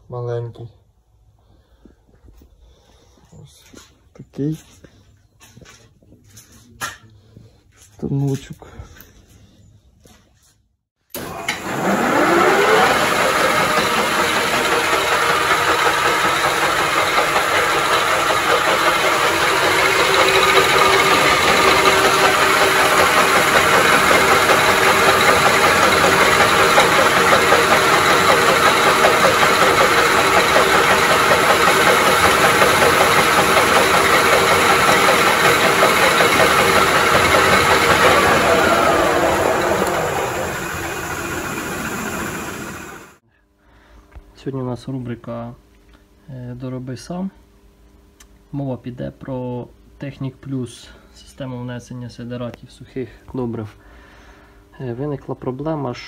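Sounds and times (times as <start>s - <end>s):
lathe whining: 11.2s - 43.2s.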